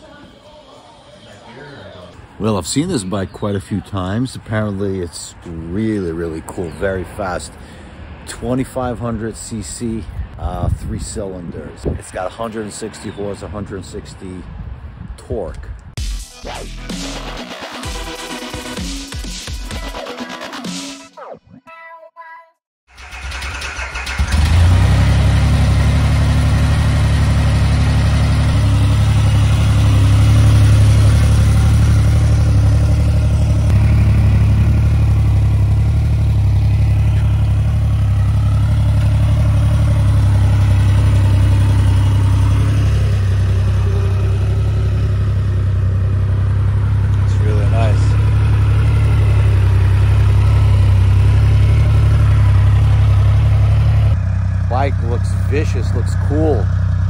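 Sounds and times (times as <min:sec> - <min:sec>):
motorcycle engine idling: 0:22.9 - 0:57.0.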